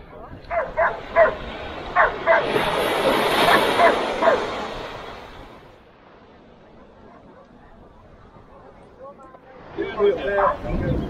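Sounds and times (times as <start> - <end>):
rushing noise: 1.0 - 5.8
small dog yapping: 3.5 - 4.5.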